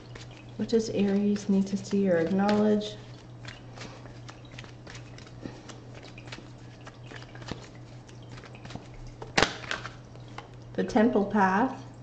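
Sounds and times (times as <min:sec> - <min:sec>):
cards being shuffled: 0:00.0 - 0:10.6
card snapping: 0:03.4 - 0:10.0.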